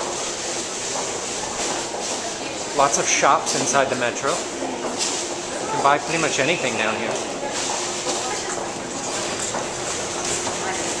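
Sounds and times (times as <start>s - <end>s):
footsteps: 0.0s - 11.0s
crowd voices: 0.9s - 11.0s.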